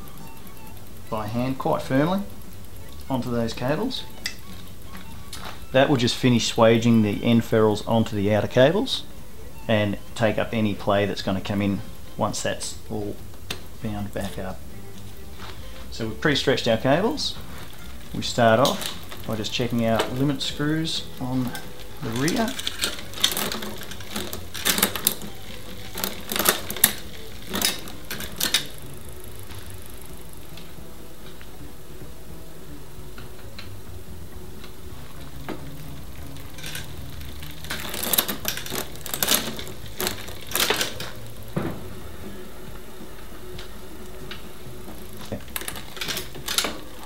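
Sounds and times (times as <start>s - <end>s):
bicycle drivetrain clicking: 0.0s - 47.0s.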